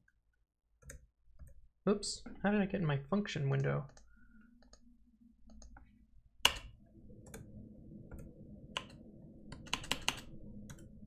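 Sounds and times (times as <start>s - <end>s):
keyboard and mouse clicks: 0.8s - 1.6s, 3.6s - 7.5s, 8.1s - 11.0s
faint steady hum: 0.9s - 11.0s.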